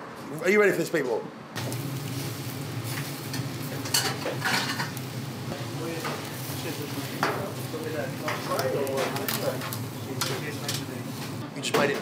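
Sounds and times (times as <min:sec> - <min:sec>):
meat sizzling on grill: 0:01.6 - 0:11.4.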